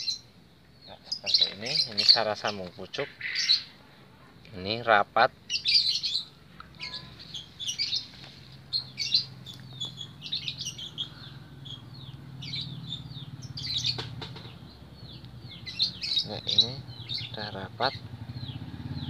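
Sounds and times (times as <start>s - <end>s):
small birds chirping: 0.0s - 19.0s
low engine hum: 5.4s - 19.0s.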